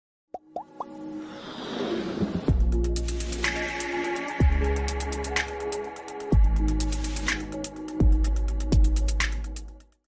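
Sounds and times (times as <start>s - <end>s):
electronic pops gliding upward: 0.4s - 1.0s.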